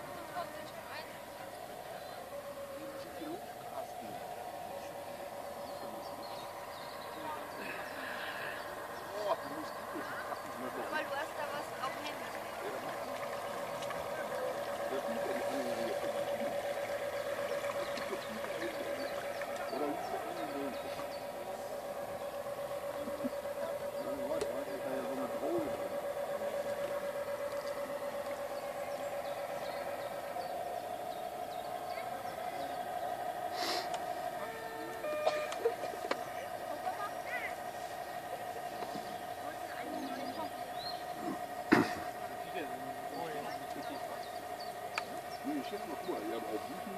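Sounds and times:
faint voices murmuring: 0.0s - 46.9s
model boat motor whine: 0.0s - 46.9s.

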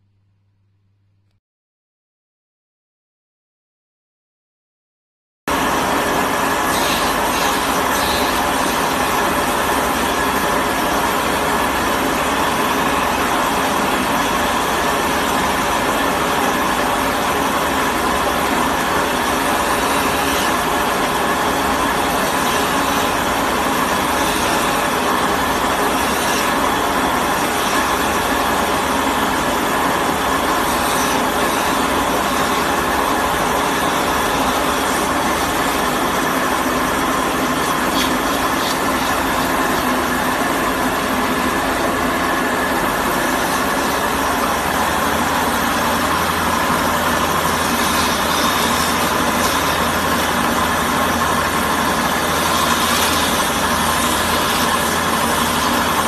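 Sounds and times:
electric wood lathe running: 5.5s - 56.0s.

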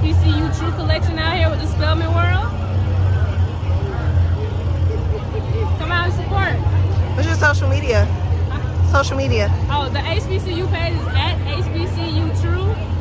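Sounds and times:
crowd chatter: 0.0s - 13.0s
steady low rumble: 0.0s - 13.0s
woman talking: 7.2s - 12.8s.

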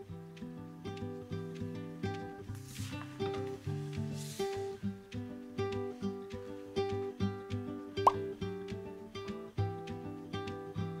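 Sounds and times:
plucked acoustic guitar music: 0.0s - 11.0s.

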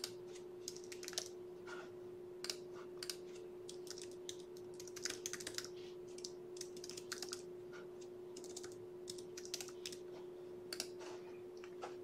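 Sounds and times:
typing on computer keyboard: 0.0s - 1.4s, 2.4s - 7.5s, 8.4s - 10.0s
steady hum: 0.0s - 12.0s.

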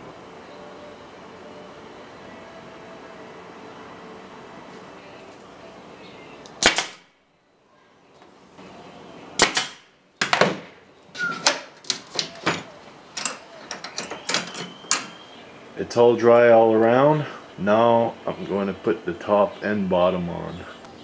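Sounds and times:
pneumatic nailer shots: 6.6s - 7.1s, 9.4s - 12.7s
clamps clicking and knocking on wood: 11.4s - 15.2s.

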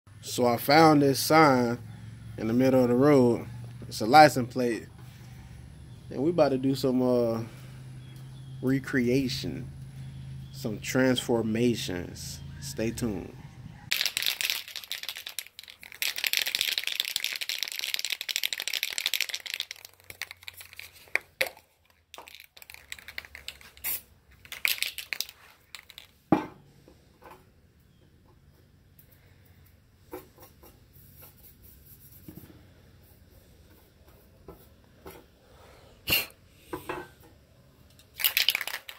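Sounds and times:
spray can ball rattling: 13.9s - 26.2s, 38.1s - 38.9s.

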